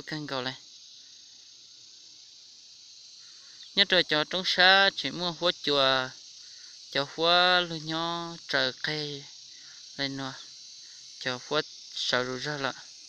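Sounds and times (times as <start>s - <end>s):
person speaking: 0.0s - 0.6s, 3.6s - 6.2s, 6.9s - 10.4s, 11.2s - 12.8s
high-pitched insect chorus: 0.0s - 13.0s.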